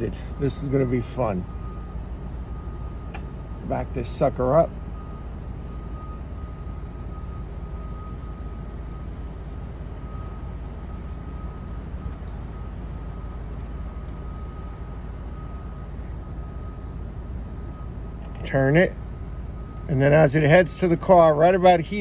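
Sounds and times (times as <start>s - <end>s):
faint high-pitched whine: 0.0s - 22.0s
low vehicle cabin rumble: 0.0s - 22.0s.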